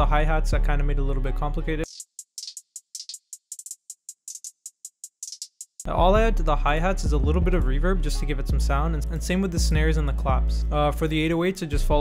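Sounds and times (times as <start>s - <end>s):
trap hi-hat pattern: 1.9s - 6.0s.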